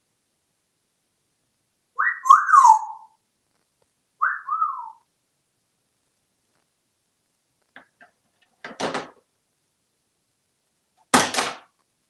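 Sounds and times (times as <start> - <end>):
parrot whistling: 2.0 - 3.2, 4.2 - 5.0.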